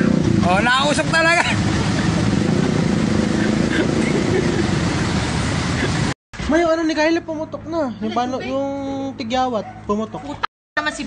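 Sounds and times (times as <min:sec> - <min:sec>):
motor engine running: 0:00.0 - 0:06.0.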